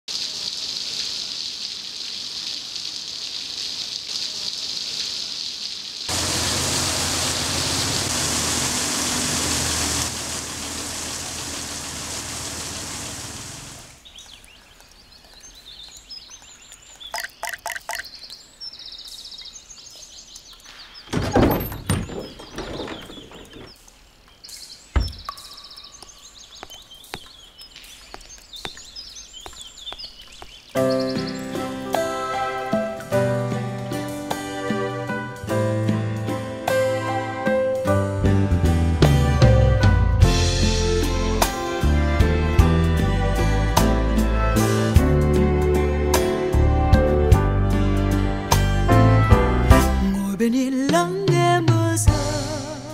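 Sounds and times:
rain falling: 0.1s - 35.1s
birds chirping: 12.6s - 33.0s.

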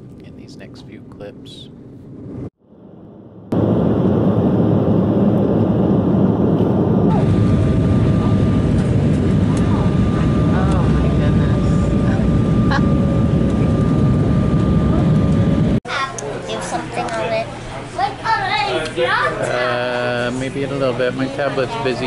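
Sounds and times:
airliner cabin drone: 0.2s - 15.8s.

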